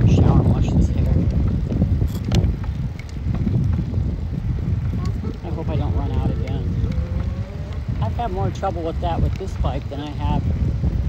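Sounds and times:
wind buffeting microphone: 0.0s - 11.0s
voice murmur: 4.9s - 8.0s.

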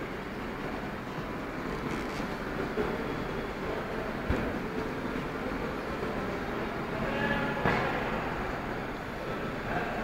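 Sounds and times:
exhibition hall din: 0.0s - 10.0s.

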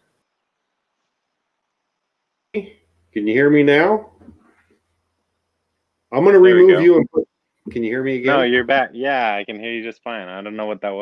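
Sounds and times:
faint low hum: 0.0s - 11.0s
man talking: 6.1s - 11.0s.

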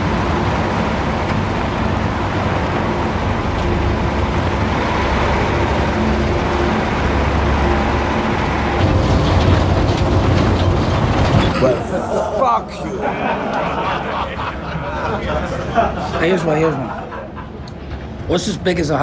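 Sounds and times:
loud low rumble: 0.0s - 12.2s
trucks and car driving past: 0.0s - 12.3s.

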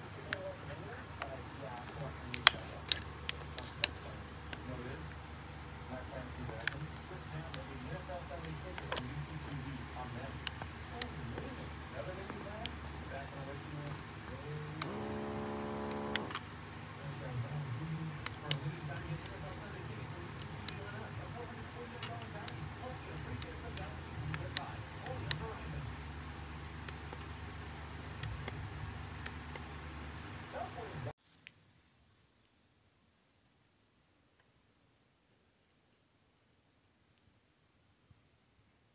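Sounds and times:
steady low hum: 0.0s - 31.1s
high monitor beep: 11.3s - 12.2s, 29.6s - 30.5s.

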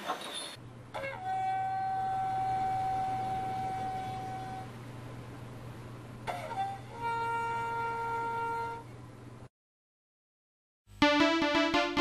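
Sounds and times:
low steady hum: 0.6s - 9.5s
flute-like wind instrument note: 1.1s - 4.7s, 6.3s - 8.9s.

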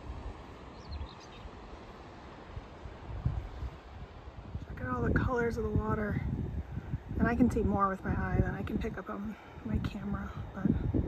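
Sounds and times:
wind rumbling on microphone: 0.0s - 11.0s
bird chirping faintly: 0.6s - 1.6s.

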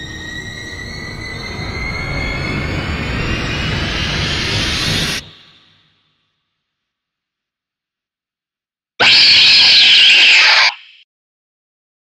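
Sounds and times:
high-pitched creature screech: 9.0s - 11.0s.

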